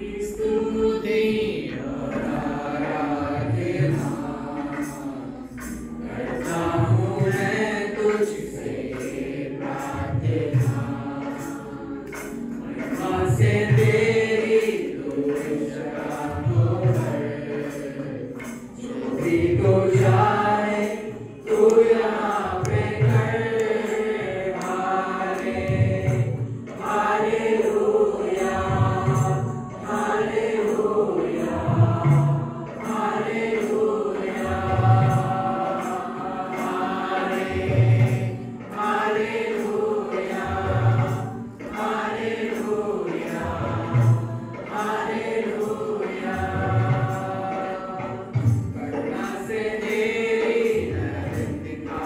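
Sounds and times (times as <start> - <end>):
group singing worship song: 0.0 - 52.0.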